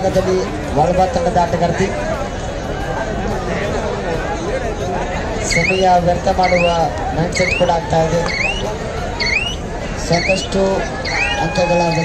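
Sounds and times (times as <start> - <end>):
crowd hubbub and voices: 0.0 - 12.0
spectators whistling: 5.5 - 12.0.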